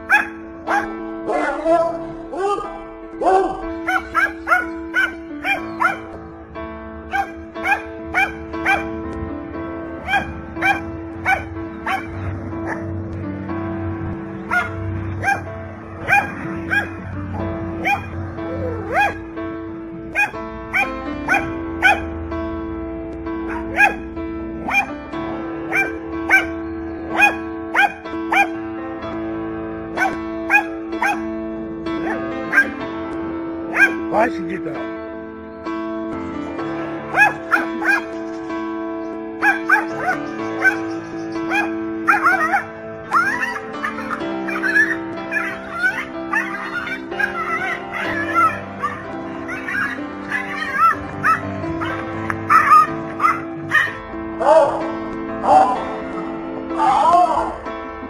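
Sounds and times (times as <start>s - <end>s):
background music: 0.0s - 58.0s
small dog barking: 0.1s - 0.9s, 3.8s - 6.1s, 7.1s - 8.9s, 10.0s - 12.9s, 14.5s - 17.0s, 17.8s - 19.2s, 20.1s - 22.1s, 23.5s - 24.0s, 24.6s - 24.9s, 25.7s - 26.5s, 27.2s - 28.6s, 30.0s - 31.2s, 32.0s - 32.8s, 33.7s - 34.0s, 37.1s - 38.1s, 39.4s - 54.0s.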